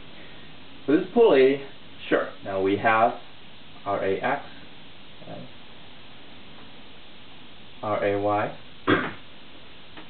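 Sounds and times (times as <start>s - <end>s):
low room tone hiss: 0.0s - 10.0s.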